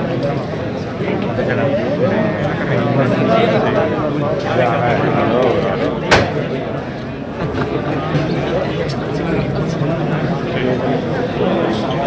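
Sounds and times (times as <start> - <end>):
crowd murmuring: 0.0 - 12.0.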